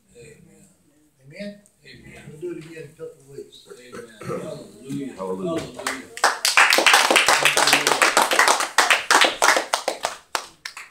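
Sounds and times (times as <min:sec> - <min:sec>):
people clapping: 0:05.5 - 0:10.9.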